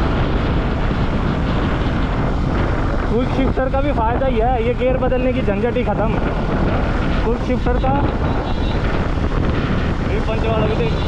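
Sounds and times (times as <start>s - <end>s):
motorcycle engine: 0.0s - 11.0s
road noise: 0.0s - 11.0s
wind rushing over microphone: 0.0s - 11.0s.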